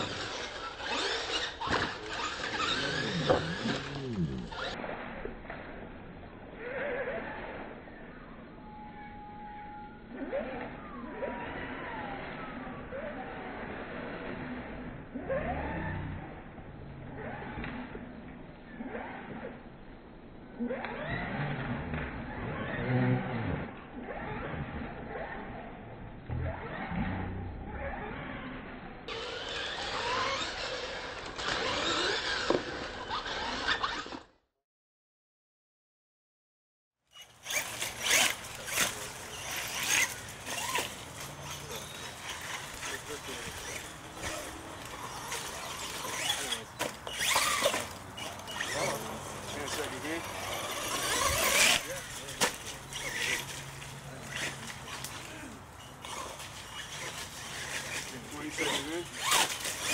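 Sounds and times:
toy truck motors revving: 0:00.0 - 0:19.6, 0:20.5 - 0:34.4, 0:37.1 - 0:59.9.

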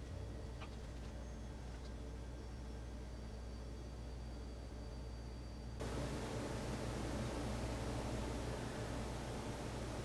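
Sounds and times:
background hiss: 0:00.0 - 0:10.0
low hum: 0:00.0 - 0:10.0.

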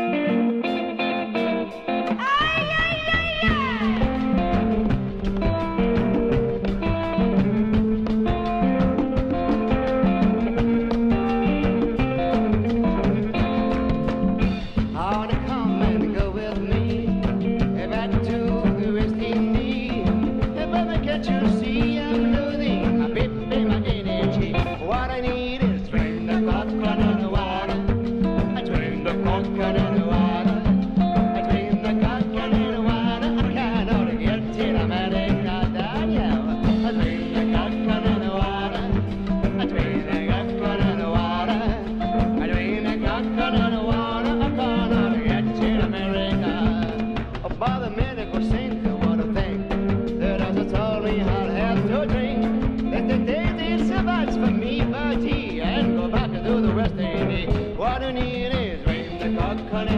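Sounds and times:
electric guitar: 0:00.0 - 0:59.9
live band music: 0:00.0 - 0:59.9
person singing: 0:00.0 - 0:59.9
drum kit and congas: 0:01.4 - 0:59.9
upright double bass: 0:03.0 - 0:59.9.

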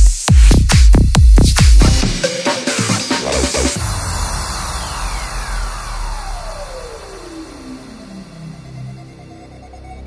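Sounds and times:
downward synth sweep: 0:03.7 - 0:10.0.

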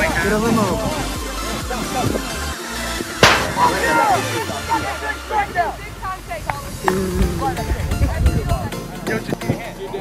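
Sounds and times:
plastic ball hit smack: 0:03.2 - 0:03.7.

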